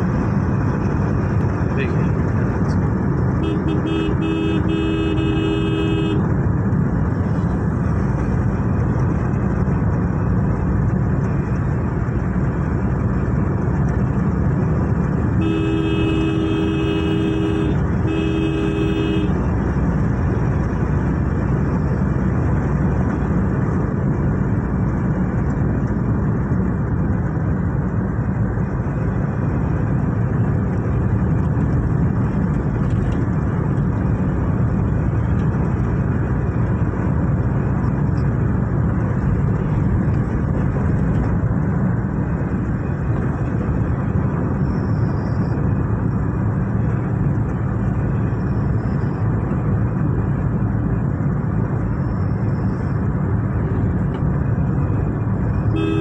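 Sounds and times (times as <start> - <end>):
road and engine noise: 0.0 - 56.0
two-tone vehicle horn: 3.4 - 6.3, 15.3 - 19.5, 55.6 - 56.0.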